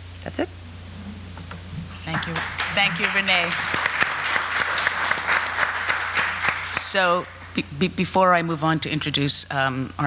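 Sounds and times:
audience applauding: 0:02.0 - 0:07.6.

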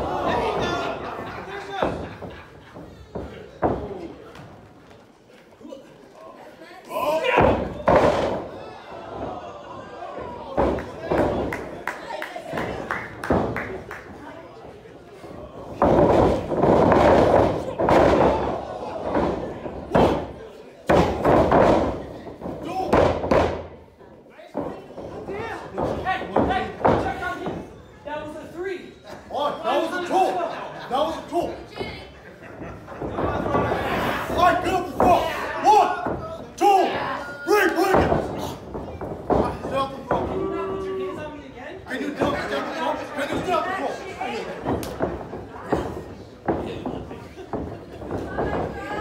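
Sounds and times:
crowd shouting: 0:00.0 - 0:02.2, 0:06.9 - 0:12.7
crowd voices in a hall: 0:00.0 - 0:49.0.

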